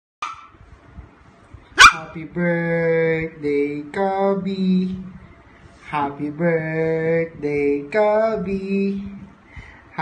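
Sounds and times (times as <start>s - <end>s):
puppy barking: 0.2s - 0.6s, 1.8s - 2.2s.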